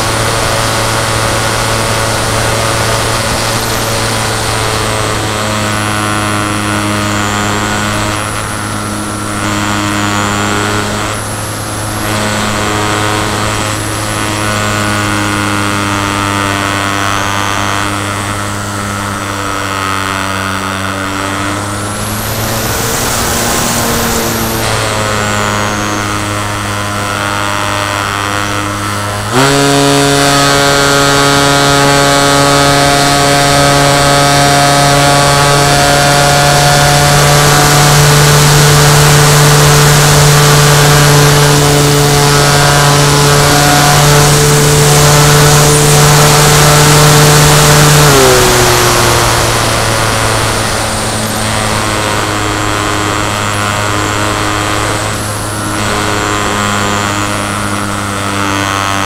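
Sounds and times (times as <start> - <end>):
electric motor and propeller hum: 0.0 - 59.0.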